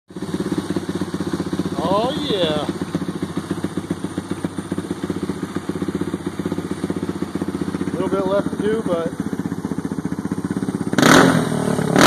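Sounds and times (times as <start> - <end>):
motorcycle engine idling: 0.1 - 12.0.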